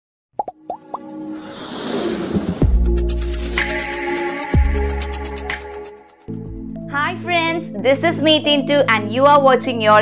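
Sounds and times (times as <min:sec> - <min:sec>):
plops dropping in pitch: 0:00.4 - 0:01.1
intro music build-up: 0:00.7 - 0:06.9.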